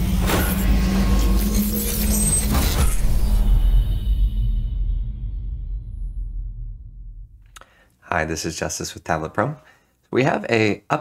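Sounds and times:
deep rumble: 0.0 - 7.6.

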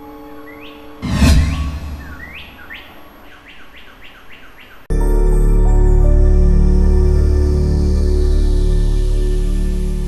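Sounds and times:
rising bird chirps: 1.0 - 4.5.

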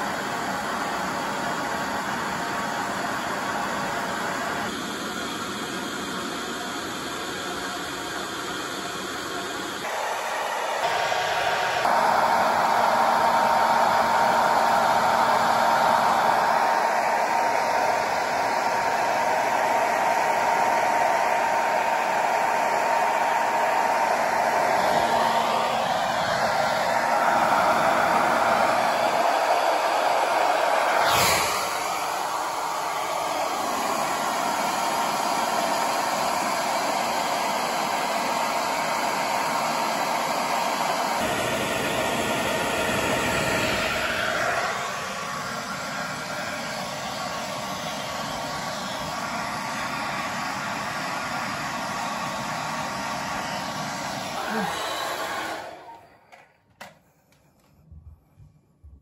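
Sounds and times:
hair dryer running: 0.0 - 58.1.

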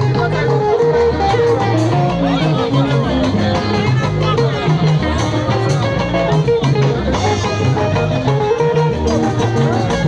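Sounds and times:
bass notes: 0.0 - 10.0
plucked guitar: 0.0 - 10.0
steady drum beat: 0.0 - 10.0.

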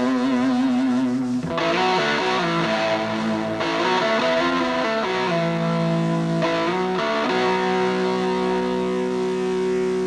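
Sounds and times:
electric guitar ringing: 0.0 - 10.0
rock band sustained chord: 0.0 - 10.0.

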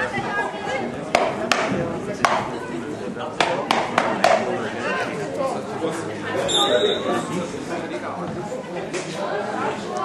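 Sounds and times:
faint voices and chatter: 0.0 - 10.0
sharp knocks: 1.1 - 2.5, 3.4 - 4.4.

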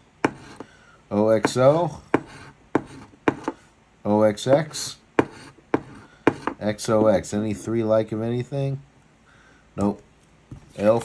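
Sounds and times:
coin scratching lottery ticket: 0.3 - 0.6.

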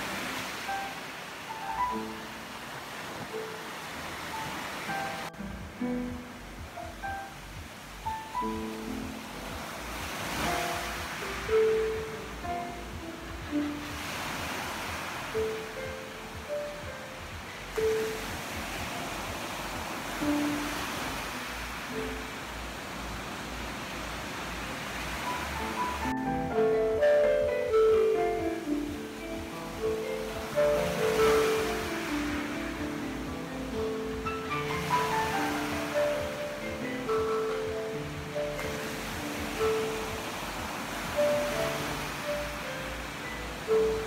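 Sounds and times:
ocean surf breaking: 0.0 - 44.0
solo piano: 0.0 - 44.0.

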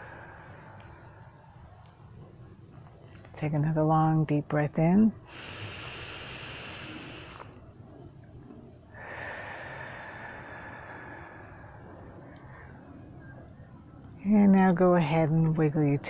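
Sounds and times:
woman breathing in and out: 0.0 - 1.6, 5.2 - 7.8, 8.8 - 13.4
crickets chirping: 0.0 - 16.0.

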